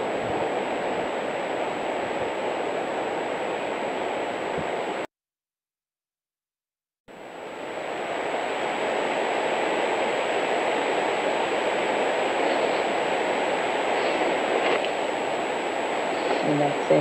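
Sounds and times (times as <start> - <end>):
steady rushing hiss: 0.0 - 5.0, 7.2 - 17.0
high electronic whine: 7.1 - 17.0.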